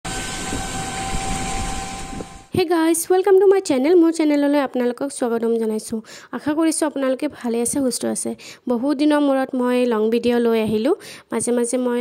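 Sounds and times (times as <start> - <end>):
faint steady whine: 0.1 - 3.1.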